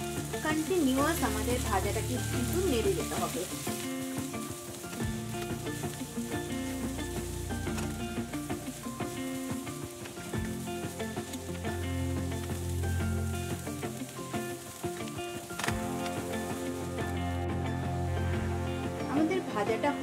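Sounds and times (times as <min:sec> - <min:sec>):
wooden spatula stirring: 0:00.0 - 0:16.6
background music: 0:00.0 - 0:20.0
vegetables sizzling in oil: 0:00.0 - 0:20.0.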